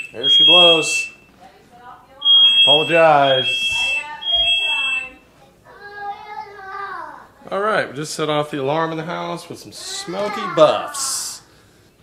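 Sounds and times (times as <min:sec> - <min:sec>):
smoke alarm beeping: 0:00.0 - 0:01.4, 0:02.2 - 0:05.3.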